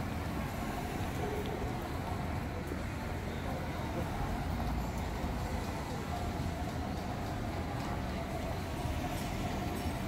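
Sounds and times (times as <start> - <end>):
faint voices of people: 0.5 - 10.0.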